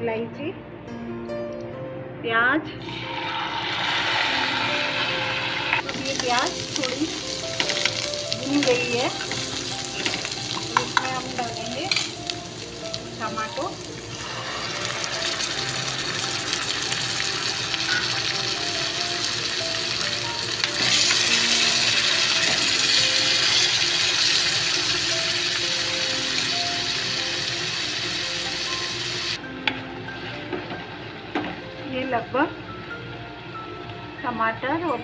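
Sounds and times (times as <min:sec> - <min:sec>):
tomatoes sizzling in hot oil: 0:02.8 - 0:29.4.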